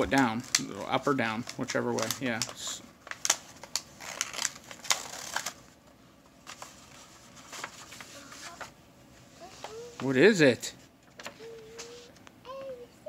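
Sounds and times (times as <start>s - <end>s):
stiff paper rustling: 0.0s - 10.2s, 10.8s - 12.2s
small paper clicks: 1.4s - 5.6s.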